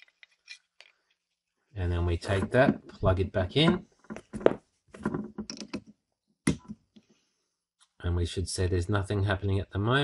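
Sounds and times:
cable plugging clicks and knocks: 3.6 - 6.8.

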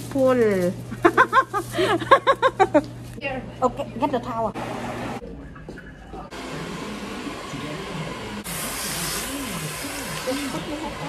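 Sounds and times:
water sprayer rushing hiss: 8.4 - 11.0.

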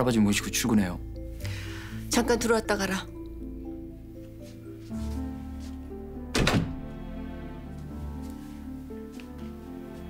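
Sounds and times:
soft music of held notes: 0.0 - 10.0
door shutting with a thud: 6.3 - 6.9.

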